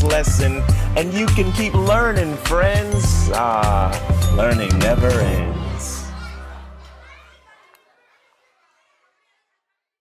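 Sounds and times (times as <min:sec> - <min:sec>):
upbeat song final chord: 0:03.2 - 0:07.2
held bass note: 0:04.0 - 0:07.1.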